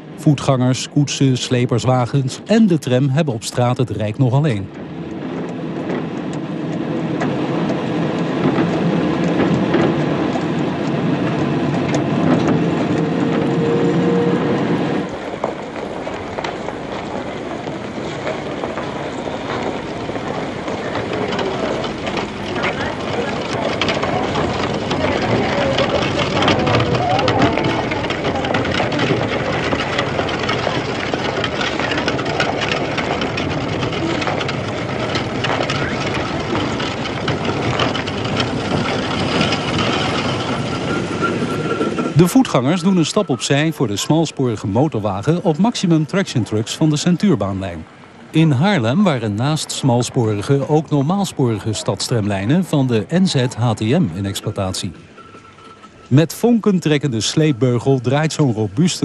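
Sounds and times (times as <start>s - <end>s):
traffic rumble and clatter: 0.0s - 59.0s
murmur of voices: 20.4s - 37.0s.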